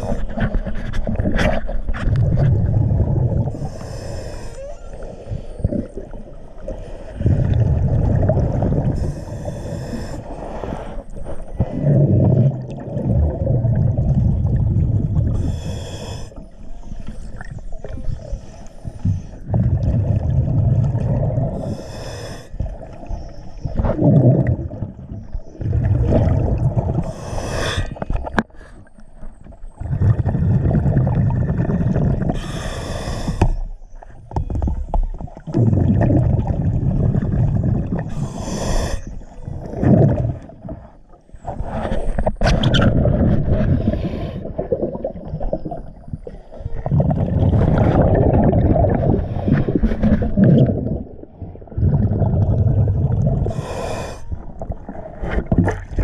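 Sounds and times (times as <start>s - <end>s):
exhaled bubbles rumbling: 0.0s - 56.0s
regulator inhale hiss: 3.5s - 5.6s, 9.0s - 11.2s, 15.4s - 16.6s, 21.6s - 22.7s, 27.0s - 29.0s, 32.3s - 33.8s, 38.1s - 39.4s, 43.7s - 44.6s, 53.4s - 54.4s.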